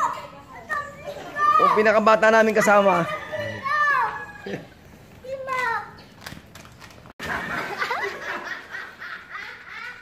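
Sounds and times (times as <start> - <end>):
high-pitched laughter: 7.2 - 10.0.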